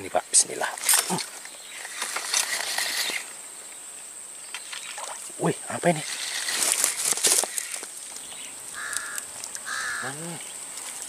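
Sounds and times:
high insect drone: 0:00.0 - 0:11.0
fishing reel whirring and clicking: 0:08.8 - 0:10.0.

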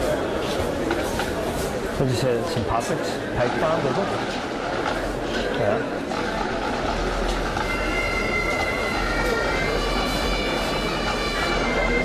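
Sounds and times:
bagpipes playing: 0:07.4 - 0:12.0.

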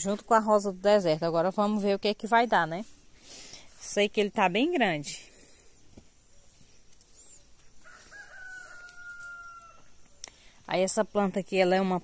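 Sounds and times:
rooster crowing: 0:07.8 - 0:10.0.

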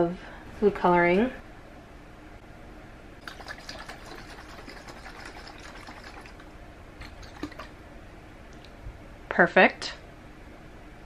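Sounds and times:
faint water dripping: 0:03.2 - 0:07.8.

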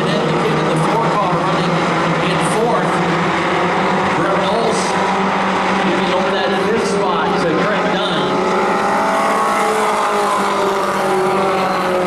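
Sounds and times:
race car engines passing: 0:00.0 - 0:12.0.

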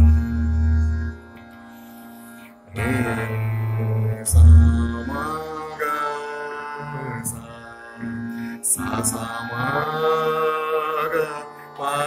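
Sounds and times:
man singing classical vocal: 0:00.0 - 0:01.6, 0:02.7 - 0:12.0
steady drone: 0:00.0 - 0:11.4.

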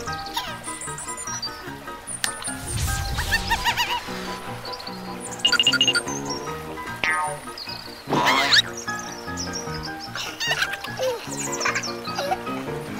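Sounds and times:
cartoon background music: 0:00.0 - 0:12.9
squeaky cartoon sound effects: 0:07.0 - 0:07.5.

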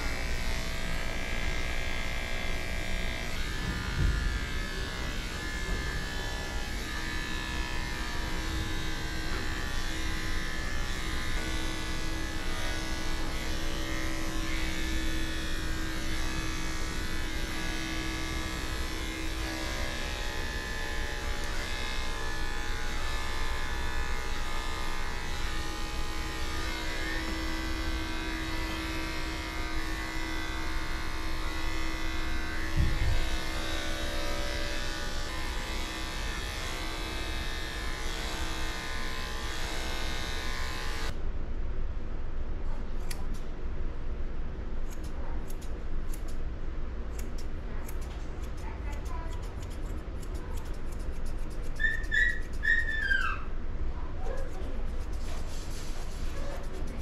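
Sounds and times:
electric clipper buzzing: 0:00.0 - 0:41.2, 0:44.9 - 0:46.4, 0:47.1 - 0:53.4.

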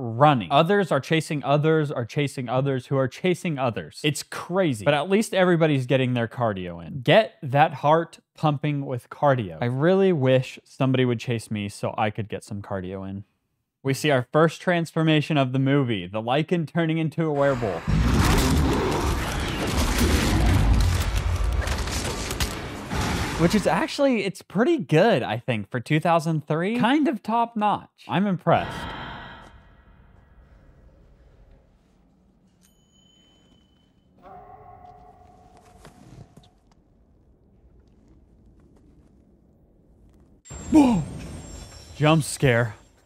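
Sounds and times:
high ringing ping: 0:32.6 - 0:35.1
man screaming: 0:40.7 - 0:41.1.

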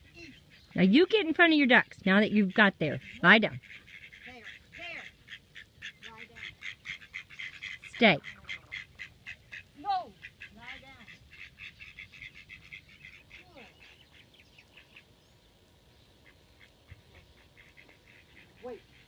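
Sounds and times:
ducks quacking: 0:00.0 - 0:15.2, 0:15.8 - 0:19.0.

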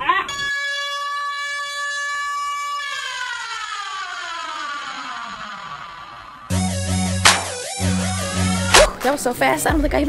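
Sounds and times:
comic dash sound effect: 0:06.5 - 0:09.0.

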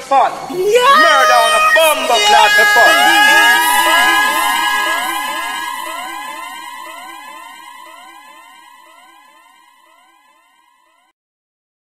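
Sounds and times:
electronic siren wail: 0:00.5 - 0:11.0.

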